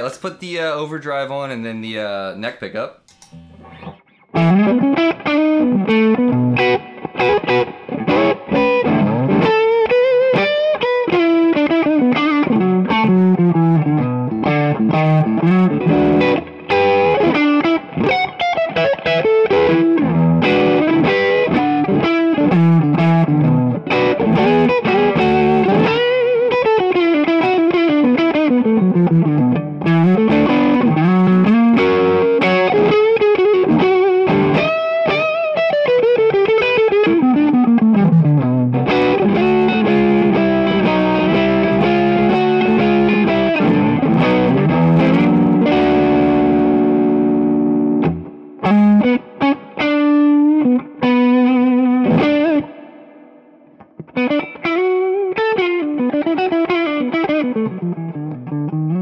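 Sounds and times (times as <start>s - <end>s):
overdriven electric guitar lead lines: 3.1s - 59.0s.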